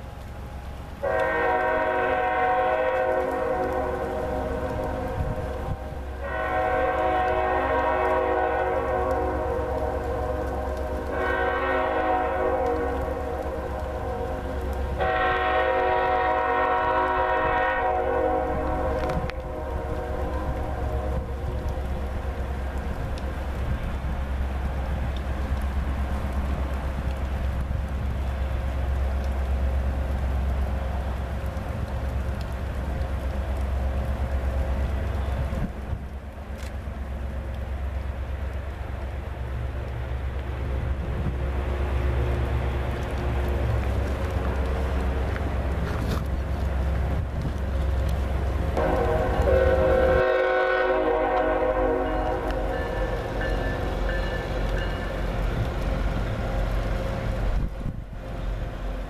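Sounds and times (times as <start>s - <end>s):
locomotive air horn blasts: 1.0s - 21.6s, 48.8s - 55.4s
diesel engines rumbling: 3.4s - 59.0s
wind buffeting microphone: 4.0s - 6.9s, 18.5s - 28.8s, 31.4s - 36.4s, 40.3s - 51.2s, 52.1s - 59.0s.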